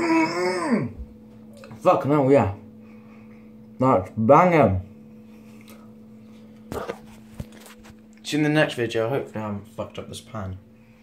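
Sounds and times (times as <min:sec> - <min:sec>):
low electrical hum: 0:00.0 - 0:11.0
phone handling rustle: 0:06.6 - 0:08.2.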